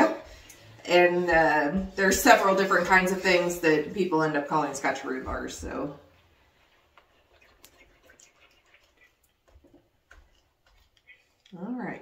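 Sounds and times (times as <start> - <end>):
wooden spoon stirring in pan: 0.0 - 11.6.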